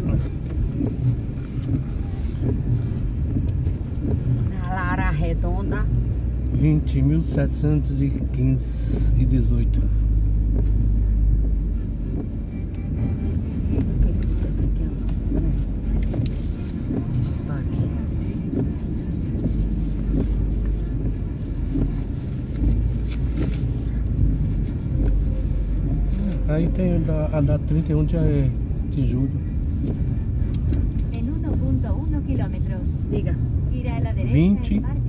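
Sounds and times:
car engine and tyres rumbling: 0.0s - 35.0s.

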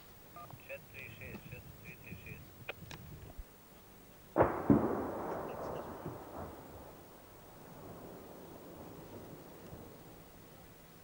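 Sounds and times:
distant gunshots: 4.4s - 10.2s
rolling echo: 4.4s - 10.7s.

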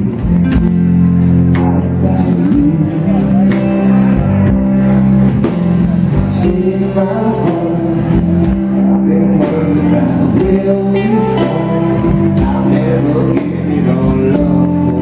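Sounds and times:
sung vocals: 0.0s - 4.7s, 5.5s - 15.0s
drums: 0.0s - 15.0s
electric bass: 0.0s - 15.0s
strummed guitar: 0.0s - 15.0s.

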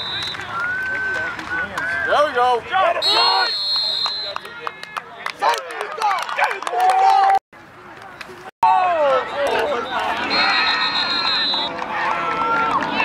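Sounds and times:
referee's whistle blast: 0.0s - 1.2s, 3.0s - 4.4s, 9.8s - 11.7s
whistle chirp: 0.0s - 1.3s, 3.0s - 4.4s, 9.9s - 11.7s
spectators shouting and cheering: 0.0s - 13.0s.

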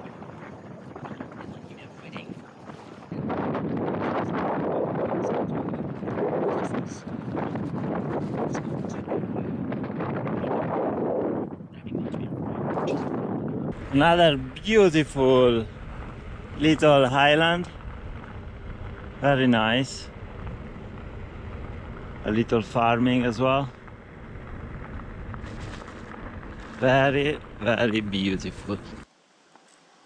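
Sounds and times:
wind buffeting microphone: 0.0s - 29.1s
bicycle tyres crunching on gravel: 13.7s - 29.0s.

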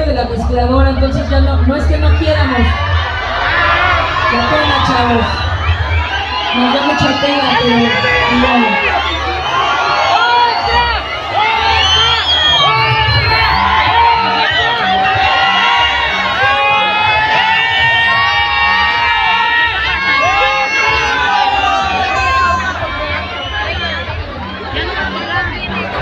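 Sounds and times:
crowd shouting and singing: 0.0s - 26.0s.

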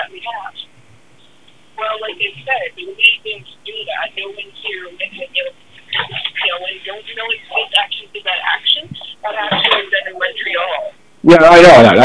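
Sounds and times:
people talking telephone-like: 0.0s - 0.6s, 1.8s - 12.0s.

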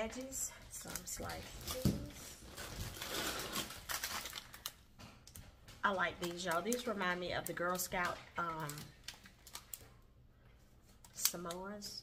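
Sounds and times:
plastic packaging rustling: 0.0s - 10.0s.

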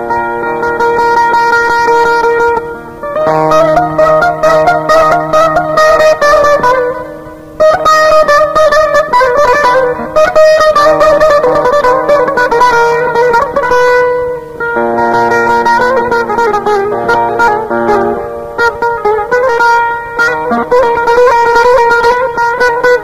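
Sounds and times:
plucked string instrument folk music: 0.0s - 23.0s.

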